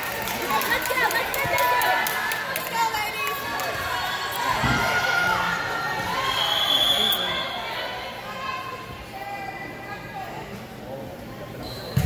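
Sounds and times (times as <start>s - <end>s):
overlapping voices talking: 0.0s - 5.9s.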